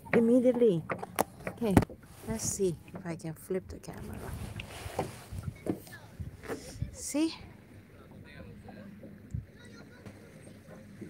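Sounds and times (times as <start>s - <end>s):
soft knocks and rubs: 0.9s - 3.1s, 3.9s - 6.8s.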